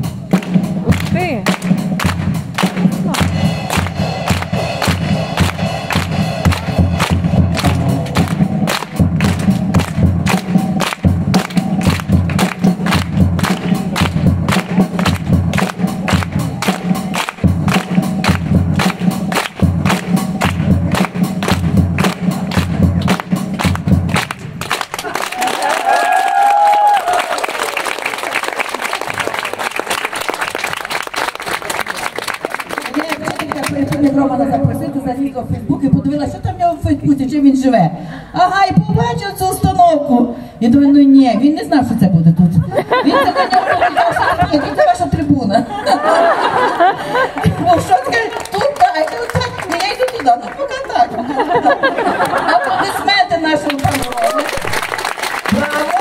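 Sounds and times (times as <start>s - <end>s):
drum kit fast beat: 0.0s - 25.1s
audience clapping and cheering: 0.3s - 34.2s, 46.1s - 52.9s, 53.6s - 56.0s.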